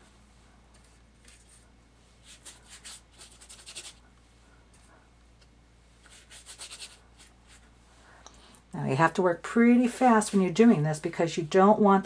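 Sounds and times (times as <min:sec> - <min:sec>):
brush scrubbing on wet paper: 0:00.6 - 0:04.0, 0:06.0 - 0:07.8.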